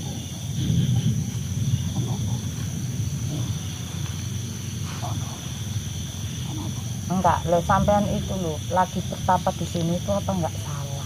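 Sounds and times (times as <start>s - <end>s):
low uneven rumbling: 0.0s - 11.0s
night insects chirring: 0.0s - 11.0s.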